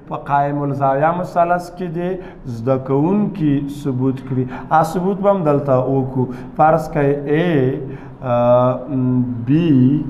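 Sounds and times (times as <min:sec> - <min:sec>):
man calling out drawn-out syllables: 0:02.5 - 0:10.0.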